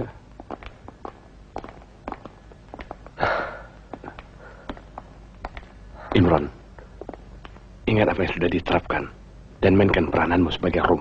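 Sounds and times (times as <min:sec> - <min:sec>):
light footsteps: 0:00.0 - 0:07.9.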